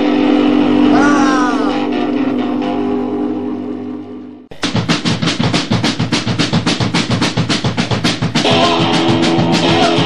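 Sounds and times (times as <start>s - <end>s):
punk rock band playing: 0.7s - 3.0s, 4.5s - 10.0s
fast snare and bass drum hits: 4.5s - 10.0s.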